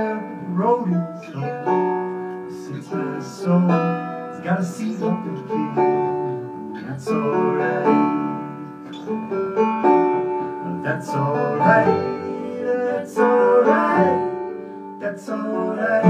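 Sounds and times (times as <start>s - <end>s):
acoustic guitar: 0.0s - 16.0s
banjo: 0.0s - 16.0s.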